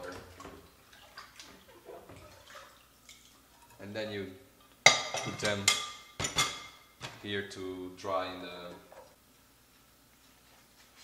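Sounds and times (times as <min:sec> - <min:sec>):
small water splashes: 0:00.0 - 0:03.4
dishwater sloshing and dripping: 0:00.0 - 0:03.8.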